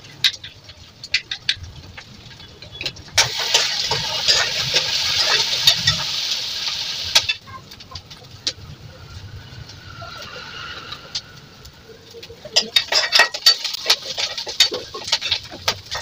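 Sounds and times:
food sizzling in hot oil: 3.1 - 16.0.

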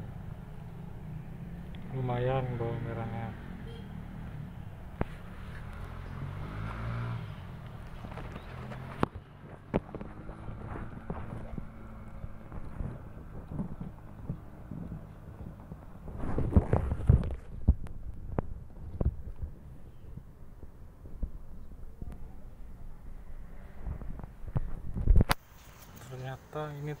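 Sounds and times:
leaves rustling: 25.4 - 26.5.

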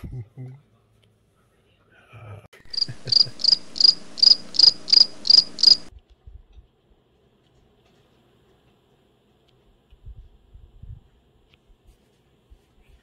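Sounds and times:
cricket chirping: 2.6 - 5.9.

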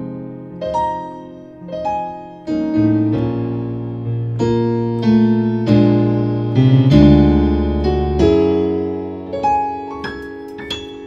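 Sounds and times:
piano gospel chords: 0.0 - 11.0.

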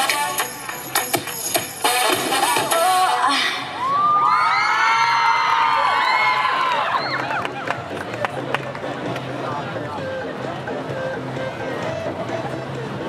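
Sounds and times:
dance music: 0.0 - 4.2, 5.8 - 13.0
crowd cheering and screaming: 3.3 - 7.8.

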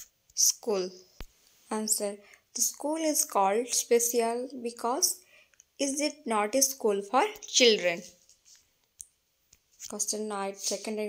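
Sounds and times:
person speaking: 0.3 - 8.6, 9.8 - 11.0.

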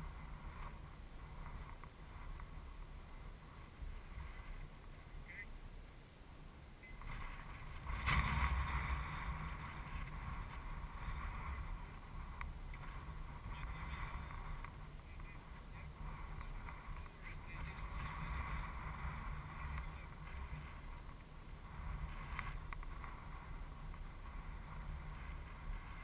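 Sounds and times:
wind buffeting microphone: 6.8 - 26.0.

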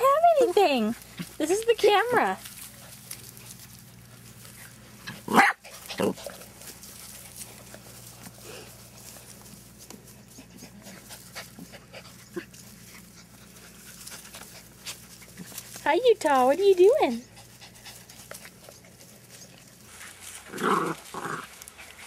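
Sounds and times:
puppy yelps: 5.3 - 6.1.

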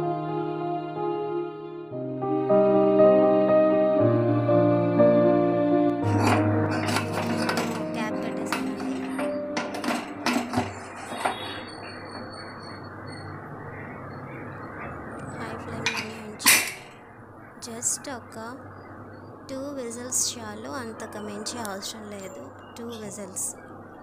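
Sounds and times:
metal lid clinks and knocks: 6.0 - 12.4, 15.8 - 17.0
pressure weight clanking onto vent: 6.0 - 12.5, 15.7 - 17.0.

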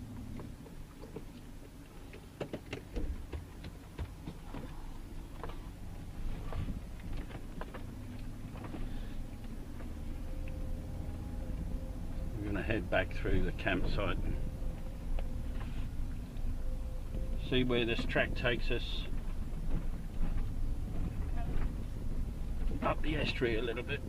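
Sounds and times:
engine and tyre rumble: 0.0 - 24.0.

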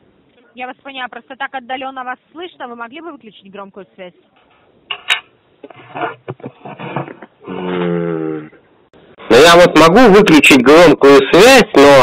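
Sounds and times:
scraping and rubbing: 4.4 - 7.4.

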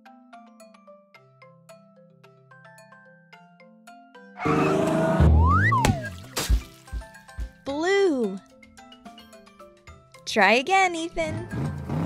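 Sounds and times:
bending cartoon tone: 4.4 - 6.2
whistle rising and falling: 4.4 - 6.2
light plucked music: 4.5 - 11.9.

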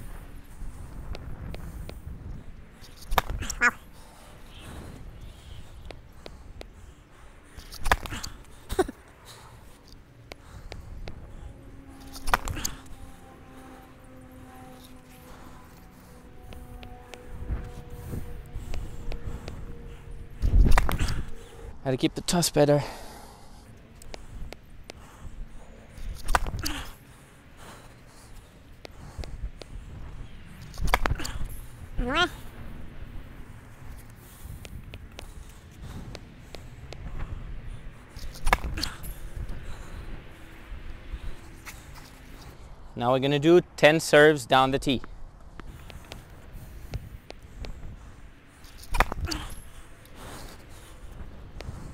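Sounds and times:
low outdoor rumble: 0.0 - 51.9.

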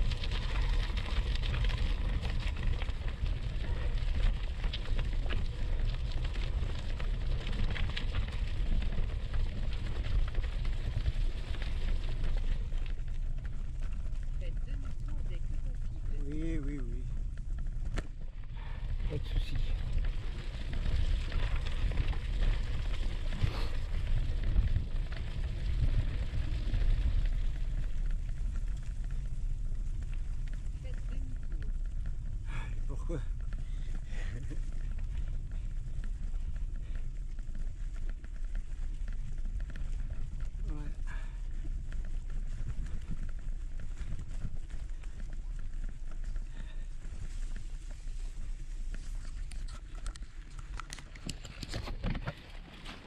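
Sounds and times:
bike tyres rolling on dirt track: 0.0 - 53.0
wind rumbling on microphone: 0.0 - 53.0.

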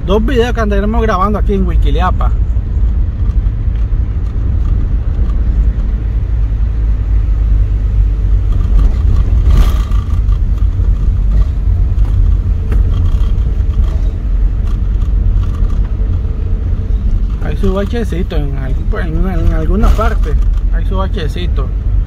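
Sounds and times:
engine and tyres rumbling: 0.0 - 22.0.

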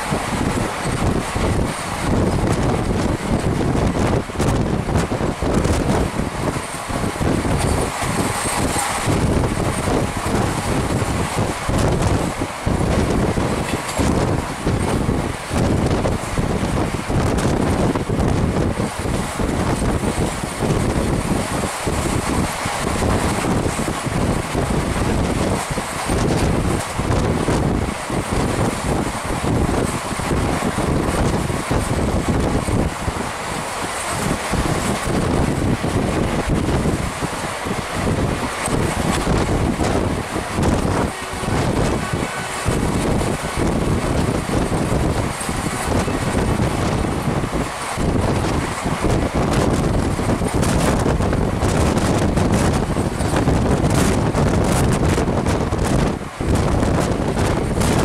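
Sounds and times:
train running on rails: 0.0 - 58.0
wind buffeting microphone: 0.0 - 58.0.

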